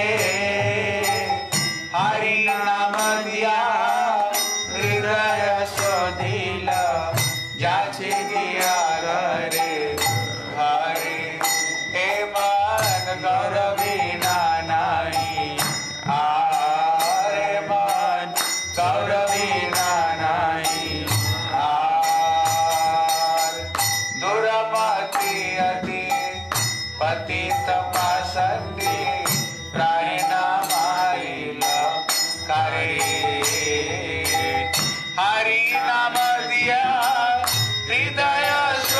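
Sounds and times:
devotional chant singing: 0.0 - 38.9
hand cymbals struck: 0.0 - 38.9
metallic percussion strikes: 0.0 - 38.9.

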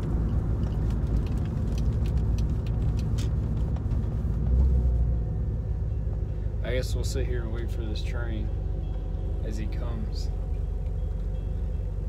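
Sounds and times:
car engine rumble from inside: 0.0 - 12.0.

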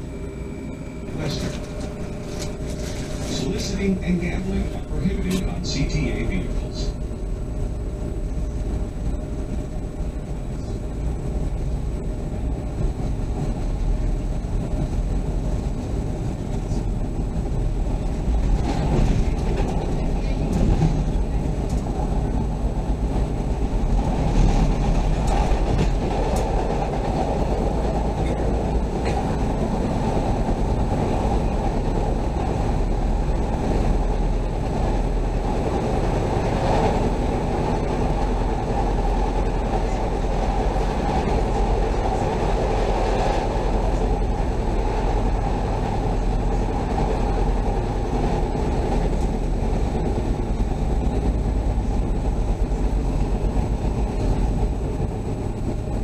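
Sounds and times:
train wheels on rails: 0.0 - 56.0.

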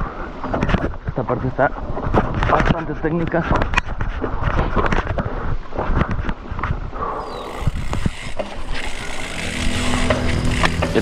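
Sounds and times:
mountain bike rattling over rocks: 7.4 - 11.0.

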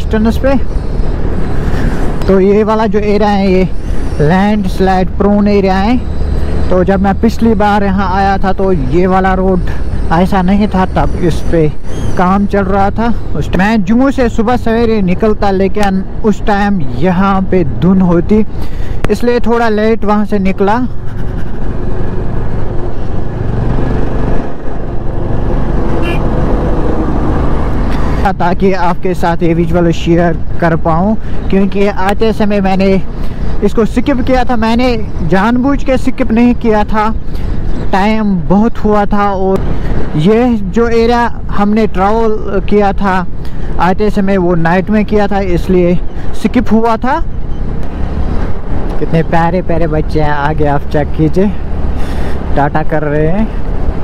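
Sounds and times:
wind and road noise: 0.0 - 54.0
motorcycle engine running: 20.9 - 27.9.

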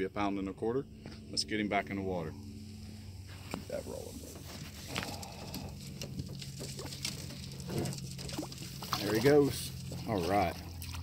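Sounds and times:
fish splashing into water: 5.0 - 11.0.

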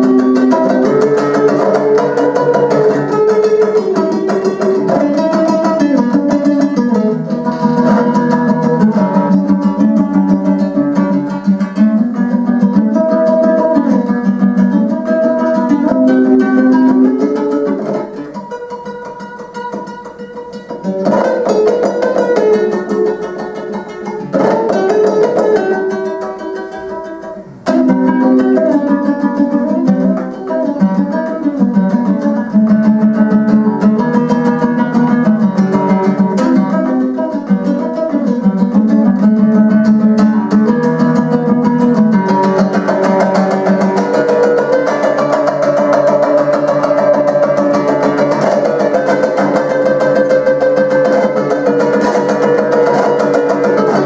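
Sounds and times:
dombra strummed rapidly: 0.0 - 54.0.

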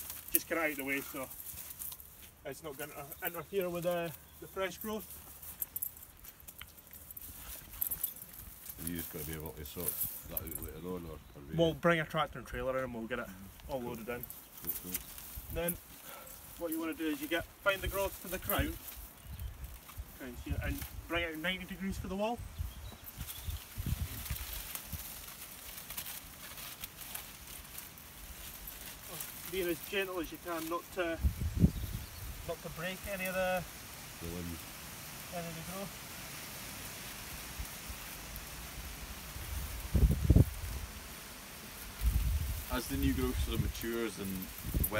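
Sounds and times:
footsteps on grass: 0.0 - 10.9, 13.2 - 44.9
rustling and crackling: 0.0 - 44.9
wind on microphone: 22.4 - 24.5, 31.2 - 32.4, 39.4 - 40.8, 42.0 - 43.8, 44.6 - 44.9.

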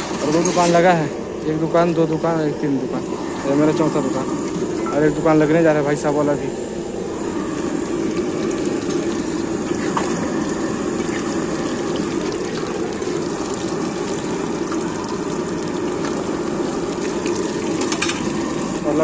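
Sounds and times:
oil sizzling and bubbling: 0.0 - 19.0.

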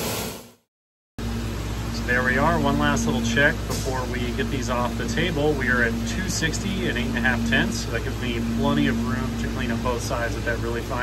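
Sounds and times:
machine hum: 1.2 - 11.0.

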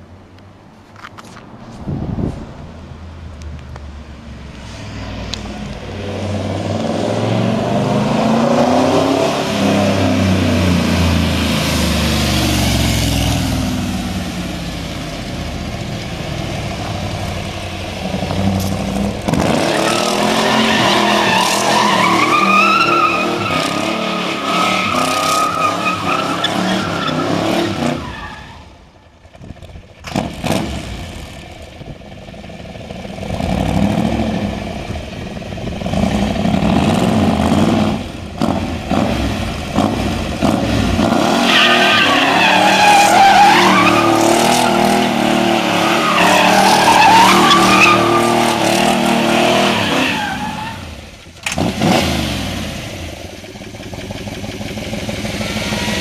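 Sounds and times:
car engine revving: 4.5 - 28.5, 30.0 - 31.6, 32.2 - 56.0
tyres squealing: 18.1 - 28.7, 41.3 - 51.0.

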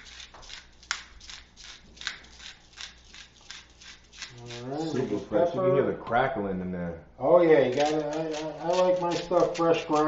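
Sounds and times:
pepper mill grinding: 0.0 - 5.3, 7.6 - 10.0.

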